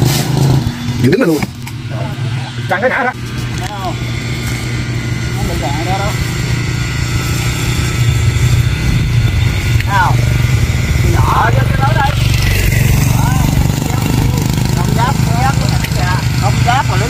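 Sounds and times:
chainsaw idling: 0:00.0 - 0:17.0.

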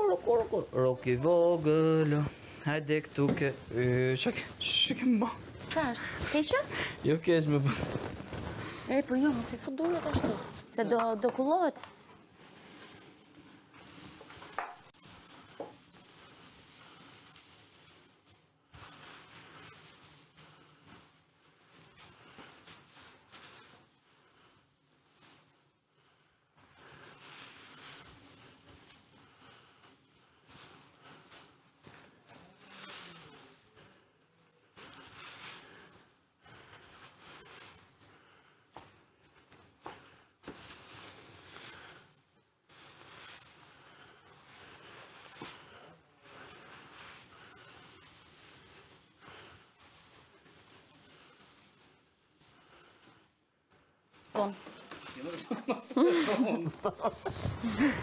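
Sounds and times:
dry hay rustling: 0:00.0 - 0:11.7, 0:12.4 - 0:25.7, 0:26.7 - 0:33.7, 0:34.8 - 0:38.0, 0:40.4 - 0:53.3, 0:54.1 - 0:58.0.

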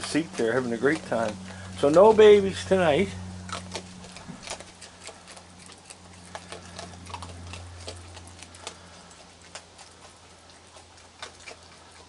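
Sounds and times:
raccoons chewing crunchy food: 0:00.0 - 0:12.0
steady low hum: 0:00.0 - 0:12.0.

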